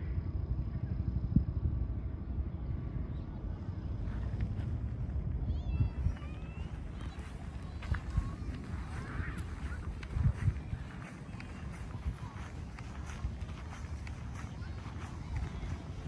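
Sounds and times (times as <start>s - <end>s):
wind buffeting microphone: 0.9s - 16.0s.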